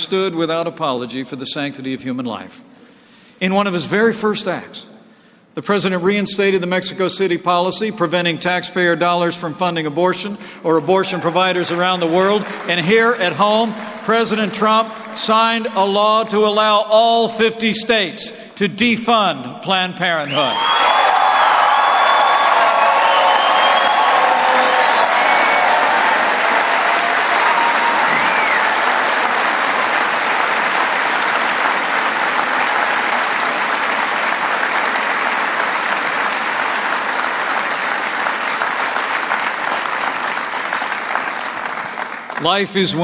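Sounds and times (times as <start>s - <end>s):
crowd applauding: 11.1s - 16.4s, 20.3s - 43.0s
crowd cheering and shouting: 20.4s - 29.8s.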